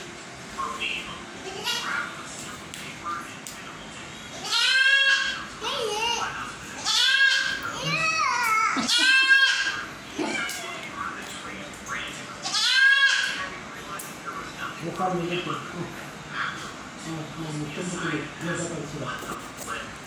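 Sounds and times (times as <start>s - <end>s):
young goat bleating: 4.4s - 5.4s, 6.8s - 7.6s, 8.8s - 10.4s, 12.4s - 13.4s.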